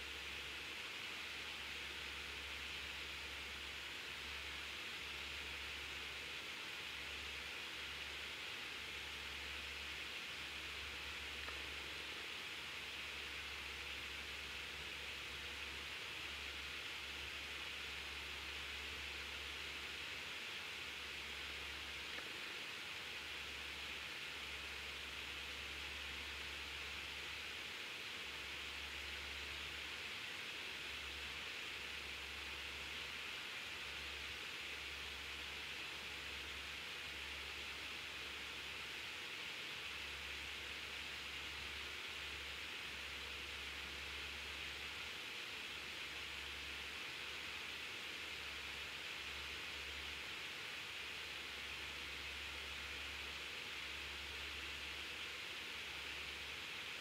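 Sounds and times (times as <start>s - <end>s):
steady background hiss: 0.0s - 57.0s.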